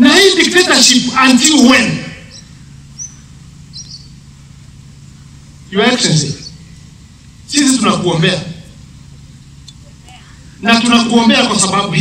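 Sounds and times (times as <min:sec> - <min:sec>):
faint low hum: 0:00.0 - 0:12.0
high bird chirps: 0:02.2 - 0:04.4, 0:05.2 - 0:07.0.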